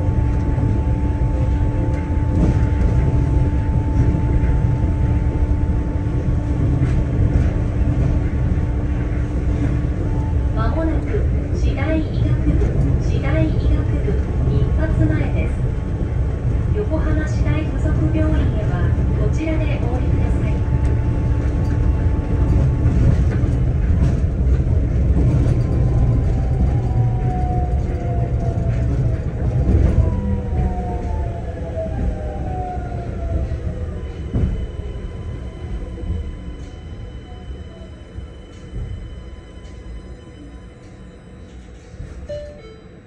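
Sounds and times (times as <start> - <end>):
train low rumble: 0.0 - 43.0.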